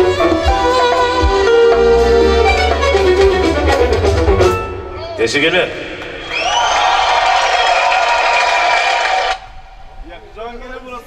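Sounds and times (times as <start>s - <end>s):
keyboards playing melody: 0.0s - 5.6s.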